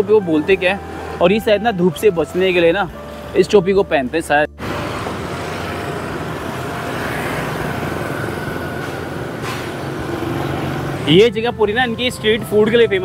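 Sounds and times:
cars passing: 0.0s - 13.0s
motorbikes passing: 0.0s - 13.0s.

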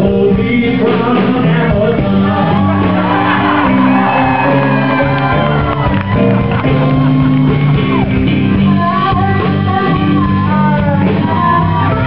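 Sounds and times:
man singing and shouting: 0.0s - 3.8s
live rock band playing blues: 0.0s - 12.0s.

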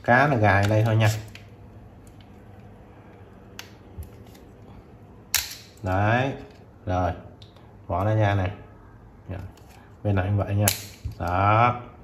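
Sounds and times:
loud sharp plastic snap: 5.3s - 5.8s, 10.6s - 11.4s.

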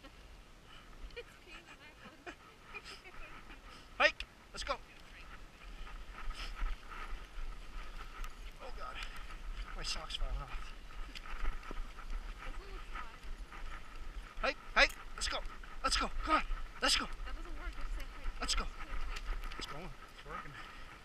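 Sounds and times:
sled runners rushing over snow: 0.0s - 21.0s
wind rumble on microphone: 4.9s - 21.0s.

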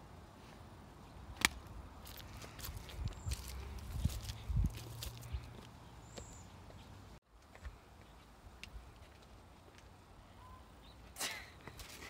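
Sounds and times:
footsteps: 1.4s - 6.8s.

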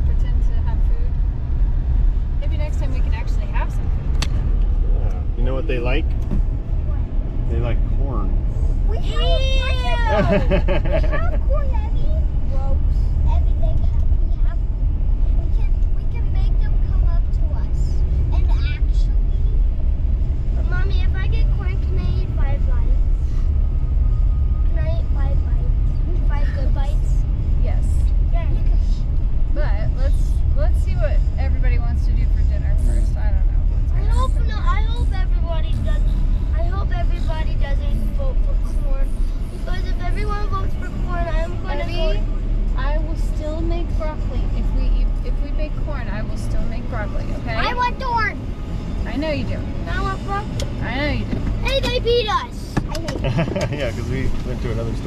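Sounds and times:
people talking: 0.0s - 1.1s, 2.4s - 3.8s, 8.9s - 14.7s, 15.4s - 19.3s, 20.6s - 23.1s, 24.7s - 48.4s, 49.0s - 55.0s
car road rumble: 0.0s - 55.0s.

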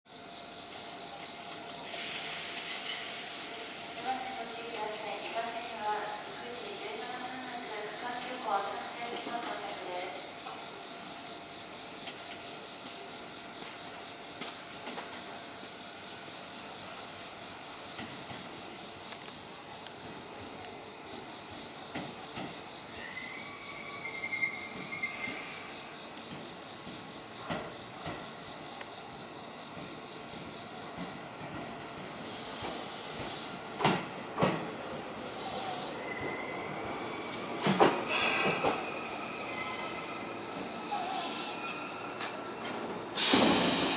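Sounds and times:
electric train rolling: 0.2s - 43.9s
air brake hisses: 1.8s - 3.8s, 32.2s - 33.6s, 35.2s - 36.1s, 37.6s - 42.0s, 43.2s - 43.9s
thin steady squeal: 21.4s - 26.2s, 35.9s - 43.2s
insect trilling: 34.9s - 43.2s.

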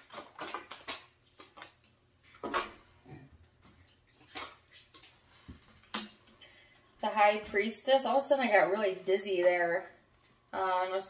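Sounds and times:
cards being shuffled: 0.0s - 2.5s.

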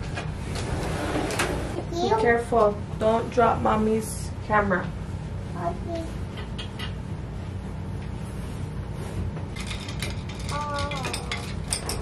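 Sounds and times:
metal clothes hangers clinking: 9.6s - 12.0s.

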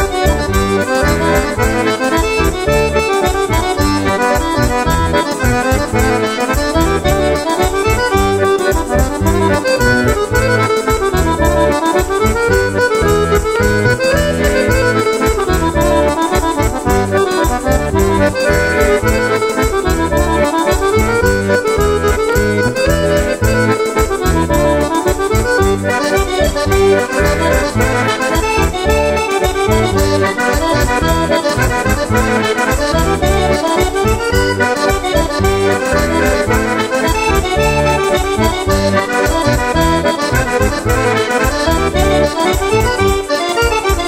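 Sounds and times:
accordion dance tune: 0.0s - 44.0s
bass line: 0.0s - 44.0s
steady fast beat: 0.0s - 44.0s.

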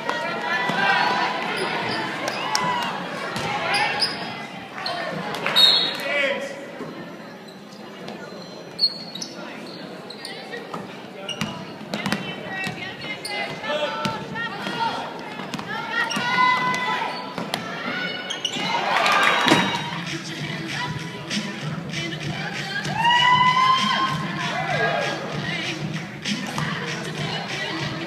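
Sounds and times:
players and spectators calling: 0.0s - 28.0s.

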